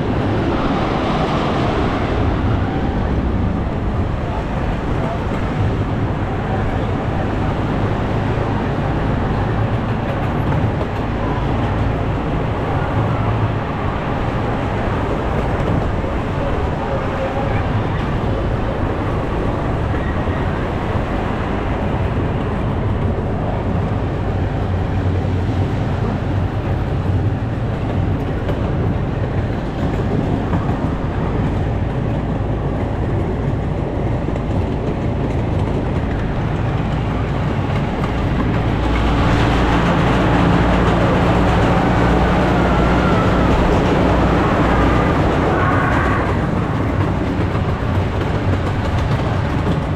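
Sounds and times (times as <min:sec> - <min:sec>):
train wheels rumbling on rails: 0:00.0 - 0:49.9.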